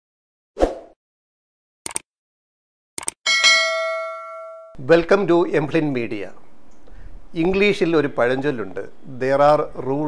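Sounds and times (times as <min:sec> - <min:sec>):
bright bell ding: 0:03.3 - 0:04.8.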